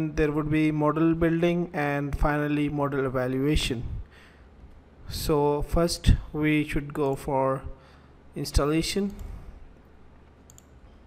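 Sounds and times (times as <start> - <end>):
computer mouse clicks: 9.0 - 9.4, 10.2 - 10.9.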